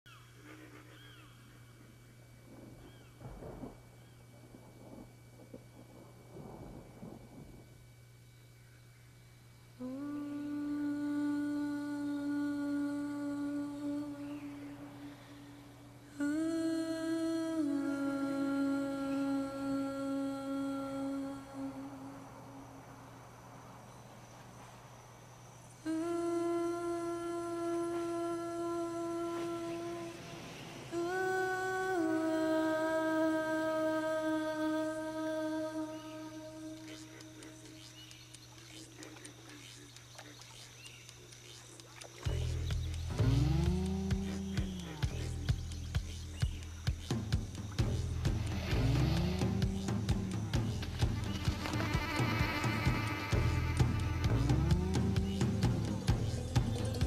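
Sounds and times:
steady low hum: 0:00.1 - 0:57.0
rough low sound: 0:42.3 - 0:57.0
faint animal cries: 0:51.2 - 0:55.2.

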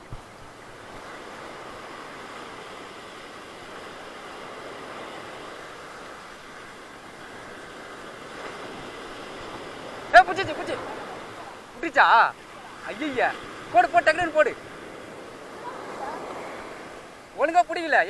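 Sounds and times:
ocean surf washing on beach: 0:00.0 - 0:18.0.

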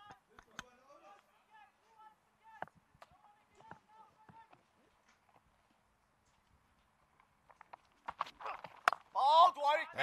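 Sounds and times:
distant players calling: 0:00.0 - 0:04.8.

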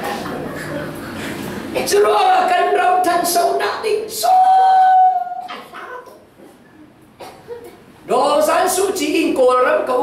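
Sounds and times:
man singing a high held note: 0:04.2 - 0:05.4.

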